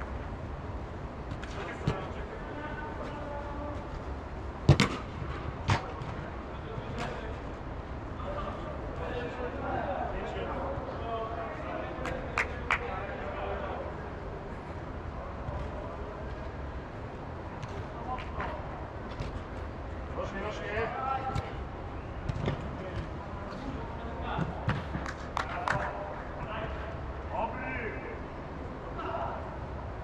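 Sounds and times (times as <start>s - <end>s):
steady low hum: 0.0s - 30.0s
ball being kicked: 4.7s - 6.2s.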